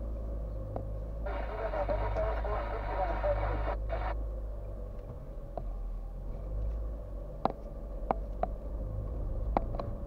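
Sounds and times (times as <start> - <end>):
car engine rumble: 0.0 - 10.0
muffled voice from radio: 1.3 - 4.2.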